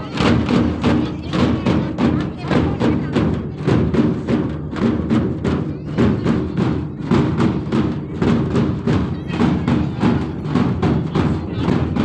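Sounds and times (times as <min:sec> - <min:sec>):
people talking: 0:00.0 - 0:04.5, 0:05.4 - 0:12.0
rhythmic drumming: 0:00.0 - 0:12.0.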